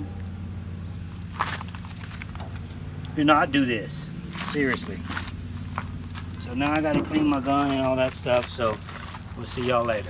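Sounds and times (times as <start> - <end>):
low motor hum: 0.0 - 10.0
footsteps crunching on gravel: 1.0 - 10.0.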